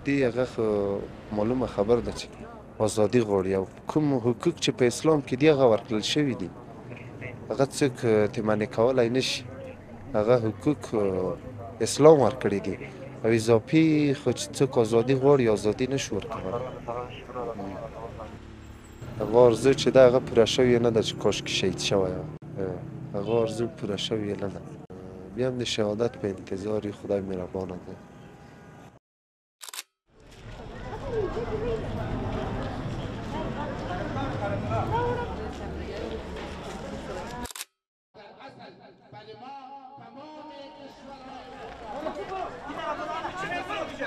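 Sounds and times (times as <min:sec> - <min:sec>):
traffic rumble: 0:00.0 - 0:29.0, 0:30.2 - 0:37.6
crowd chatter: 0:05.7 - 0:18.4, 0:30.2 - 0:37.5, 0:40.7 - 0:44.0
camera shutter click: 0:29.6 - 0:29.9, 0:37.4 - 0:37.7.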